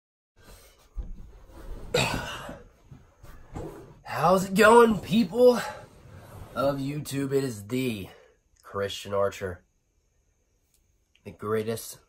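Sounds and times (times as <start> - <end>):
man coughing: 1.9 - 2.6.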